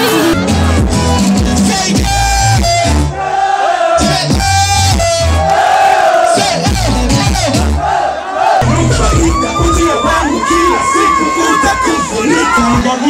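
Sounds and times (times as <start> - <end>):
loud music with heavy bass: 0.0 - 3.2, 4.0 - 5.6, 6.3 - 8.0, 8.6 - 13.0
crowd shouting and cheering: 0.0 - 13.0.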